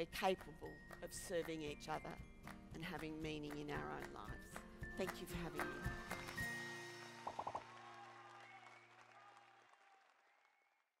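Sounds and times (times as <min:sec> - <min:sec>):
faint audience applause: 0:07.0 - 0:11.0.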